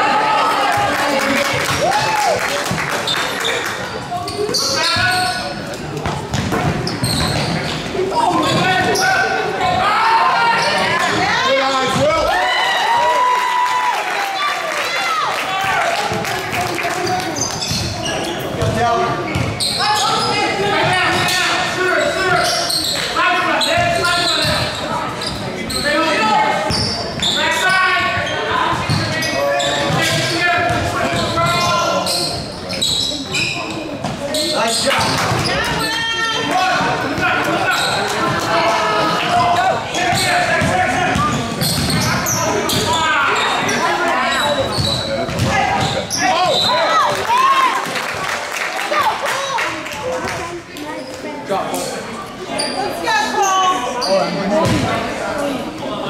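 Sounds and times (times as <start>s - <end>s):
people shouting and talking: 0.0s - 56.0s
basketball bouncing on court: 6.0s - 7.8s, 18.6s - 19.6s, 28.7s - 29.2s, 40.1s - 43.0s, 44.7s - 46.0s.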